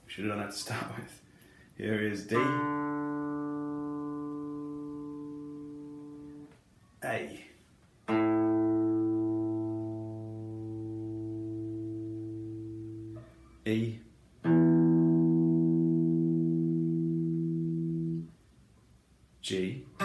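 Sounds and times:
electric guitar open strings ringing: 0:02.3 - 0:06.5, 0:08.1 - 0:13.4, 0:14.4 - 0:18.3.

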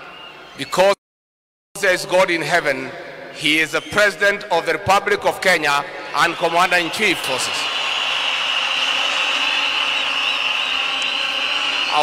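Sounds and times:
stadium crowd cheering: 0:00.0 - 0:00.9, 0:05.5 - 0:12.0.

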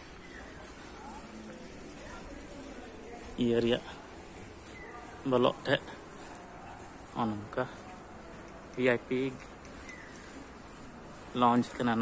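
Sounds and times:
faint outdoor background hiss: 0:00.0 - 0:12.0.

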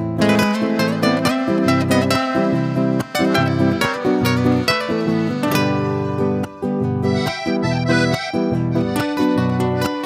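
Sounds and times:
acoustic guitars: 0:00.0 - 0:10.0
mandolin: 0:00.0 - 0:10.0
piano accordion chords: 0:00.2 - 0:10.0.

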